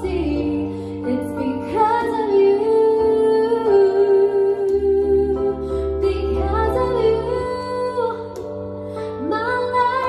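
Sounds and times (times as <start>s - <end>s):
electronic keyboard chords: 0.0s - 10.0s
woman singing a slow ballad: 0.0s - 10.0s.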